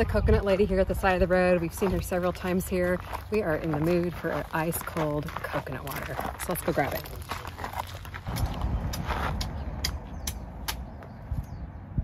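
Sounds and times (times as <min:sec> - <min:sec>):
wind rumble on microphone: 0:00.0 - 0:04.5, 0:08.2 - 0:12.0.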